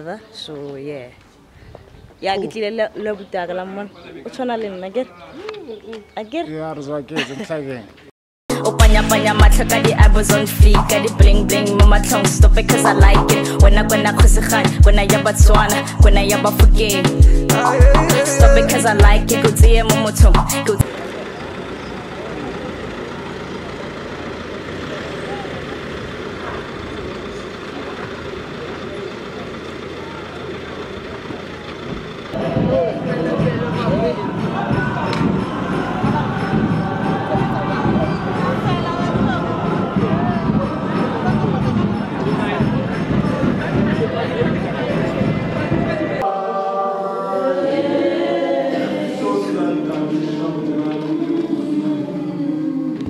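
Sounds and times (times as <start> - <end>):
choir singing in harmony: 8.5 - 20.8, 32.4 - 53.0
faint voices talking: 20.4 - 46.5
vehicle engine idling: 20.6 - 46.2.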